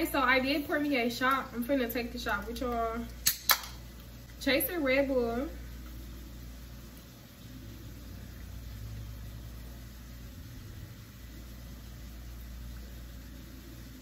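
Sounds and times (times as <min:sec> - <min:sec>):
low background hum: 0:00.0 - 0:14.0.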